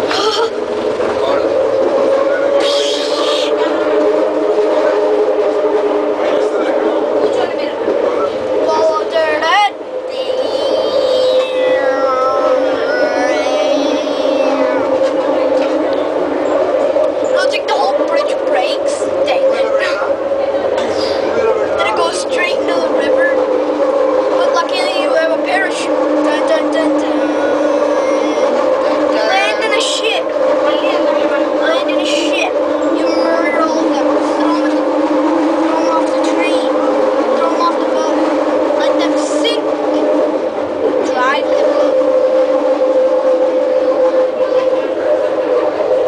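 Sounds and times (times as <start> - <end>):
indistinct voices talking: 0.0 - 46.0
train humming on guideway: 0.0 - 46.0.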